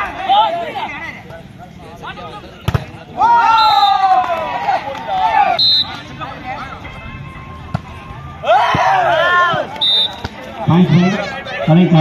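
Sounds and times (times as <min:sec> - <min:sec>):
volleyball struck thuds: 0:02.6 - 0:03.0
spectators shouting: 0:03.1 - 0:12.0
referee whistle blast: 0:03.5 - 0:04.0, 0:05.6 - 0:06.0, 0:09.8 - 0:10.3.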